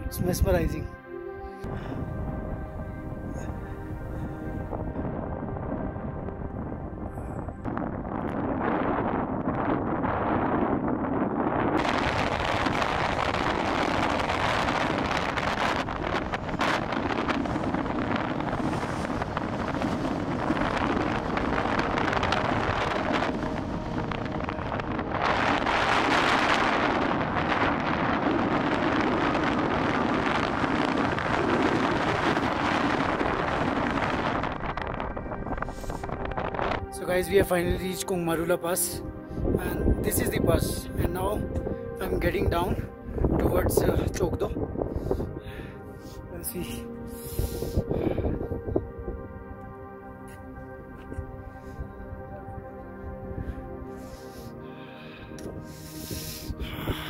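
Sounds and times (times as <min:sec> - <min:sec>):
wind blowing across microphone: 0:00.0 - 0:01.0, 0:01.6 - 0:57.0
background music with held tones: 0:00.0 - 0:57.0.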